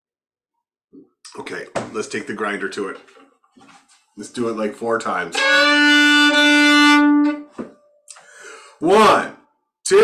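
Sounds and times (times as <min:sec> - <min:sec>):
fiddle bowing long note: 0:05.3 - 0:07.5.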